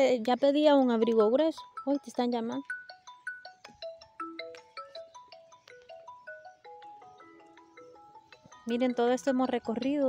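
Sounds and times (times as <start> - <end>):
phone ringtone chiming melody: 0.5 - 10.0.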